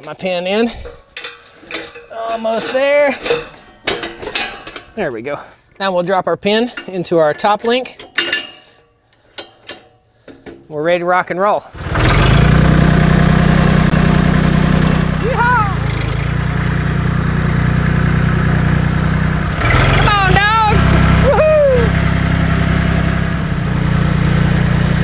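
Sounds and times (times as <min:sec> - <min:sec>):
tractor engine rumbling: 0:00.0 - 0:10.9, 0:11.7 - 0:25.0.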